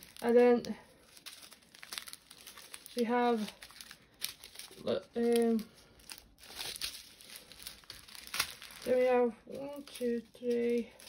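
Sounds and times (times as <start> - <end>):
plastic bags crinkling: 0.0 - 11.0.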